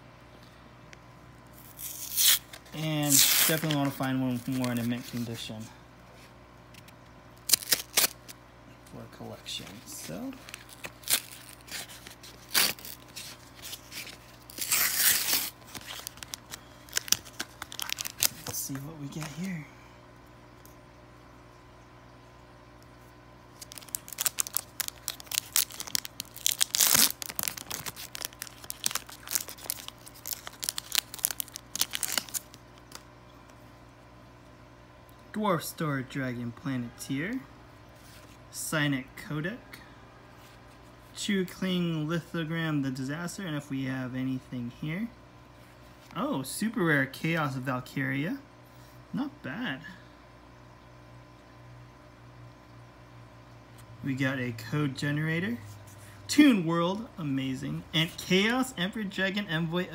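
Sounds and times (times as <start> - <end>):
plastic packaging crackling: 1.6 - 5.5, 7.4 - 8.4, 9.5 - 19.6, 23.6 - 33.1.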